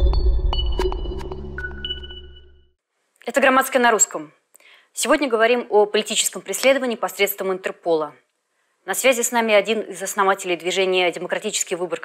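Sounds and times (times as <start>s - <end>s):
electronic intro jingle: 0.0s - 2.7s.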